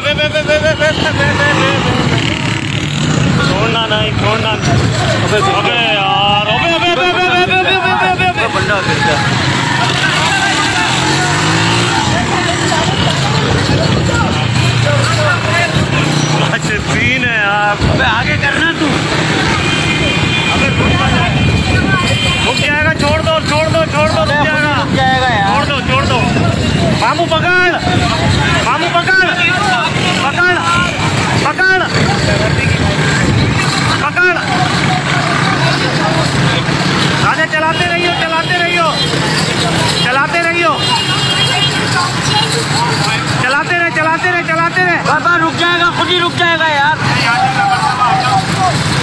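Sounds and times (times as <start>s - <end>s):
motorcycle engines running: 0.0s - 49.0s
people shouting: 4.8s - 16.4s, 37.2s - 49.0s.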